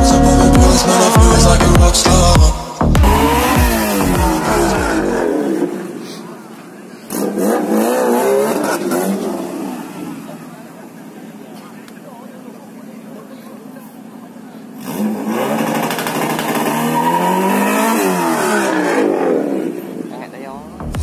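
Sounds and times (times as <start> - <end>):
music with heavy bass beat: 0.0 - 5.3, 20.6 - 21.0
car engines revving: 0.0 - 21.0
crowd voices: 0.0 - 21.0.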